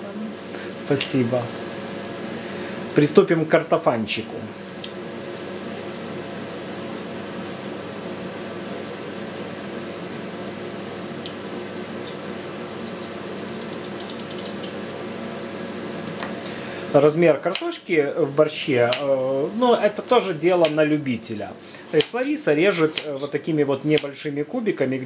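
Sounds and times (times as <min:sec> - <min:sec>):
fan motor hum: 0:00.0 - 0:25.0.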